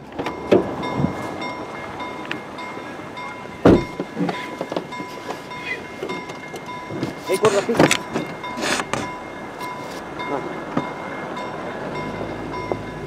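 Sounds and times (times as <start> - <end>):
level crossing bells ringing: 0.0 - 13.0
low thumps: 3.6 - 5.0.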